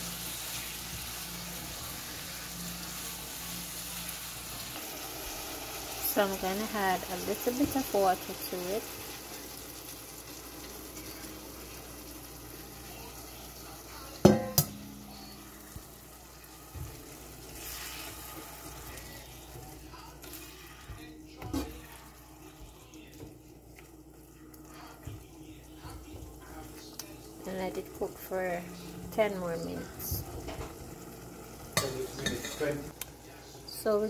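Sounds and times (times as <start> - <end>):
shrimp sizzling in a pot: 0.0 - 34.0
metal clank: 14.2 - 15.2
spatula scraping a pot: 17.5 - 19.5.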